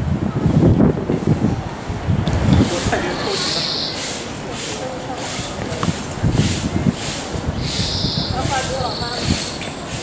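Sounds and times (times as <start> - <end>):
faint voices talking: 0.2 - 10.0.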